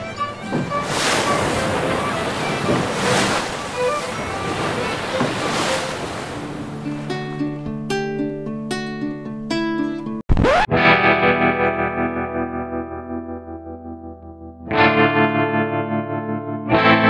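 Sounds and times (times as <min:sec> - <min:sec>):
rough sea surf: 0:00.0 - 0:07.6
wind: 0:00.0 - 0:10.0
plucked guitar tune: 0:03.8 - 0:17.0.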